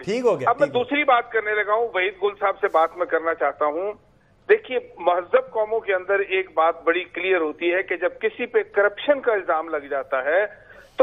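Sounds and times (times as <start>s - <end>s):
man talking: 0.0s - 1.3s.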